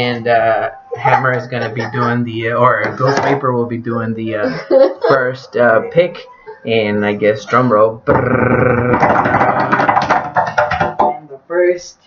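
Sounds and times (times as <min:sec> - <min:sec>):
vocal drumroll: 0:08.0 - 0:10.6.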